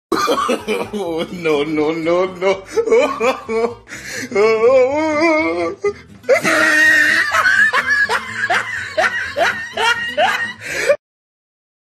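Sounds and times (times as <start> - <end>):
person laughing in bursts: 0.1 - 1.6, 2.4 - 4.0, 5.8 - 11.0.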